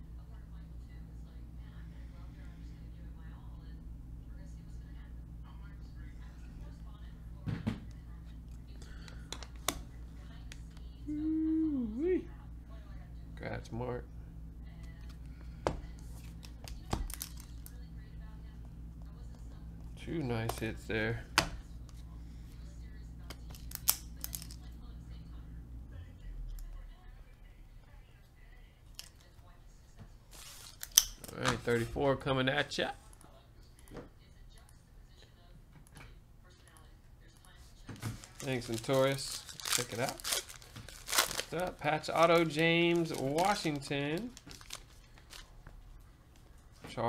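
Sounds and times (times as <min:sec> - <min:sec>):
low steady hum: 0:00.0 - 0:47.0.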